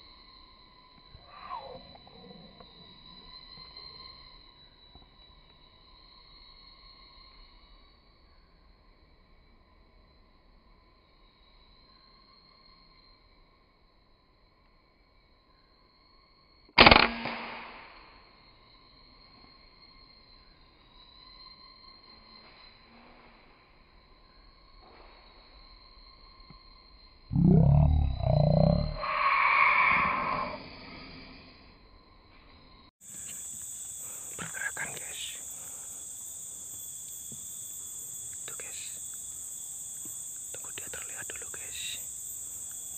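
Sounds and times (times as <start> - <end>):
high insect drone: 0.0 - 42.9
rifle shot: 16.8 - 18.1
loud voice-like call: 27.3 - 30.7.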